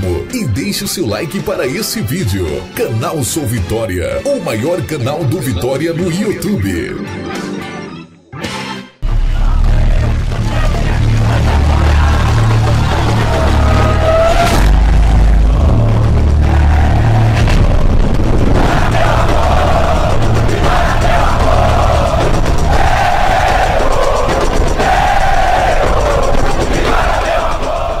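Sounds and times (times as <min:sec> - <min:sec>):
loud music with pulsing bass: 0:09.0 - 0:27.8
heavy hit: 0:09.0 - 0:28.0.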